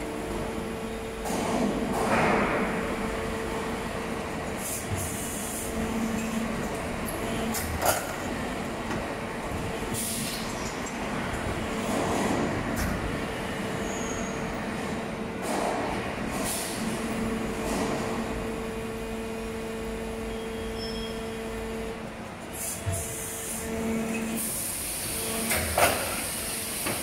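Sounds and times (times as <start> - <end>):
injection moulding machine humming: 0.0 - 27.0.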